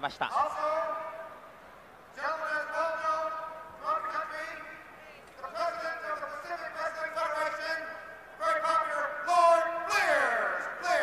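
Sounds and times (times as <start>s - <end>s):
announcer speaking into a microphone: 0.0s - 1.4s, 2.1s - 11.0s.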